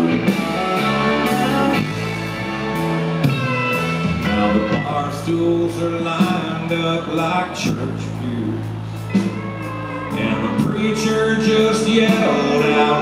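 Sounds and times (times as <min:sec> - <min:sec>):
drums: 0:00.0 - 0:13.0
electric guitars with bending notes: 0:00.0 - 0:13.0.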